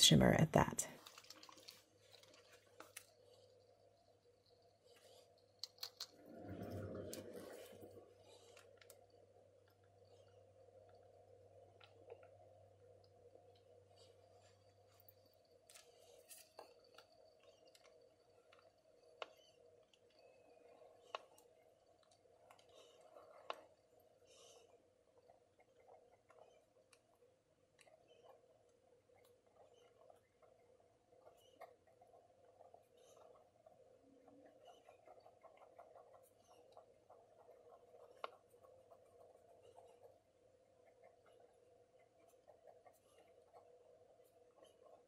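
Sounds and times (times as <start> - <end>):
faint room hum: 0.0 - 45.0
small clicks and taps on paper: 14.9 - 24.6, 34.2 - 40.1.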